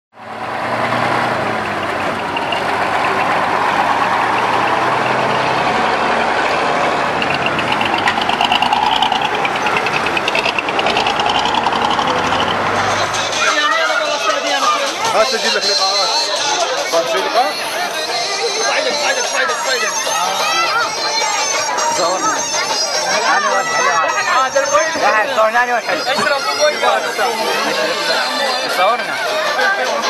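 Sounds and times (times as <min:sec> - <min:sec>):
crowd chattering: 0:00.2 - 0:30.0
heavy truck engines running: 0:00.2 - 0:30.0
voices: 0:01.5 - 0:30.0.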